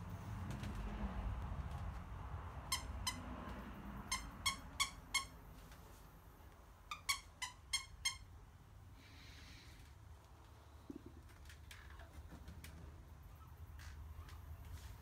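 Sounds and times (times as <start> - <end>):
squeaky toy squeaking: 2.6 - 3.3, 4.0 - 5.4, 6.8 - 8.4.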